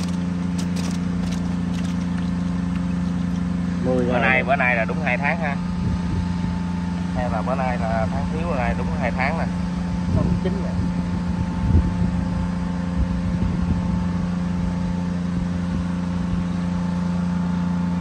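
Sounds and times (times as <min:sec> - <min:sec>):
motor humming: 0:00.0 - 0:04.5.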